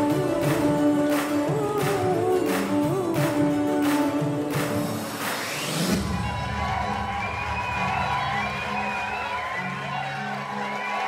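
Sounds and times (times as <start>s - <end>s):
live stage music: 0.0s - 11.0s
audience cheering: 4.0s - 11.0s.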